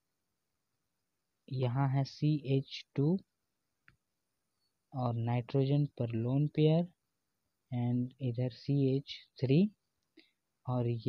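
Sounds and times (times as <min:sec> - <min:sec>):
person speaking: 0:01.5 - 0:03.3, 0:10.7 - 0:11.0.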